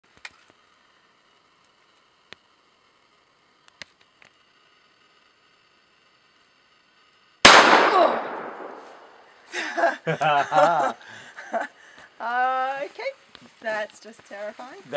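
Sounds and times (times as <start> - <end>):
shotgun shot with echo: 7.4 - 9.3.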